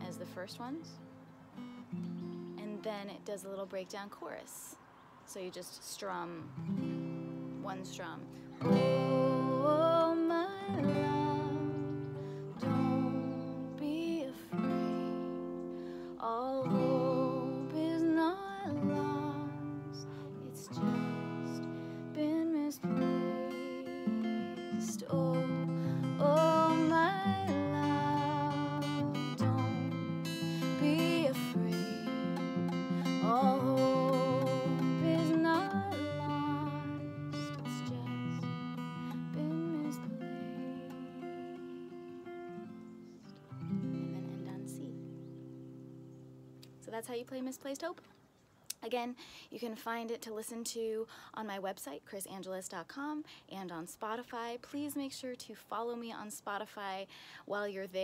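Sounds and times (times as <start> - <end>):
woman singing: 7.7 - 42.7
acoustic guitar chords strummed: 16.6 - 46.1.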